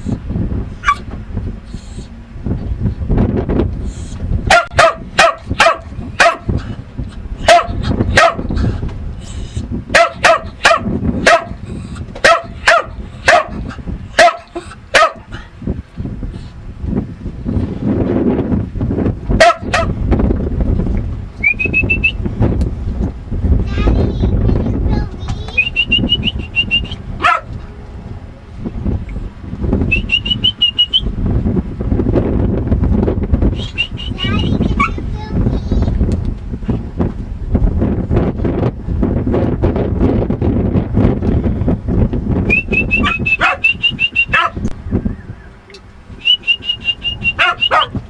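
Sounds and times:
dog barking: 0:04.5 - 0:06.5, 0:07.4 - 0:08.5, 0:10.0 - 0:11.6, 0:12.2 - 0:13.6, 0:14.2 - 0:15.3, 0:19.4 - 0:20.0, 0:27.2 - 0:27.5, 0:34.8 - 0:35.0, 0:43.0 - 0:43.7, 0:44.3 - 0:44.6, 0:47.4 - 0:48.0.

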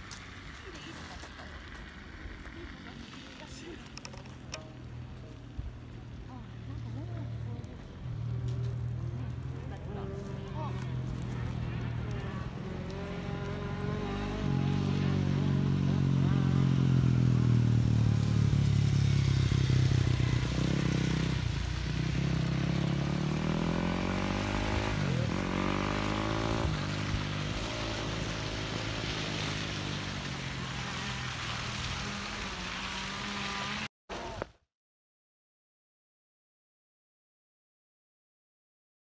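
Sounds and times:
dirt bike engines revving: 0:00.0 - 0:34.4.

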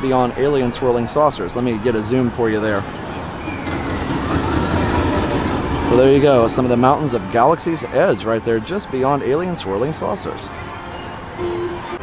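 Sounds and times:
roller coaster rumbling on track: 0:00.0 - 0:10.5.

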